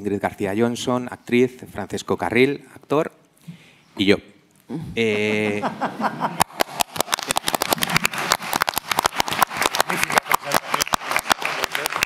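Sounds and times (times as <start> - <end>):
person speaking: 4.0 - 6.2
small group applauding: 6.4 - 12.0.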